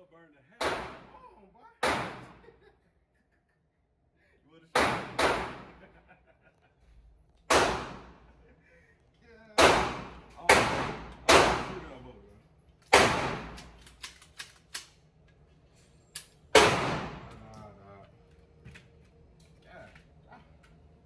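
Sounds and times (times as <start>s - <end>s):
gunshots echoing indoors: 0.6s - 1.2s, 1.8s - 2.5s, 4.7s - 5.9s, 7.4s - 8.3s, 9.6s - 12.0s, 12.8s - 15.0s, 16.5s - 17.4s.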